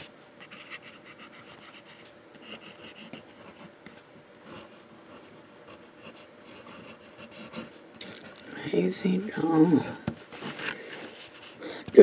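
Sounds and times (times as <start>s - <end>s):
fountain pen scratching on paper: 0.4s - 3.7s, 4.4s - 7.8s.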